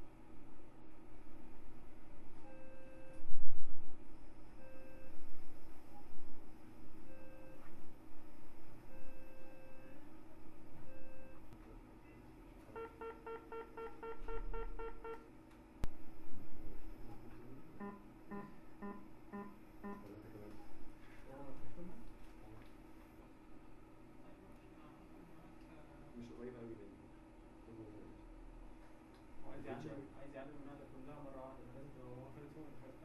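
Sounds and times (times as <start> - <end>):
electronic beeps: 17.8 - 20.1.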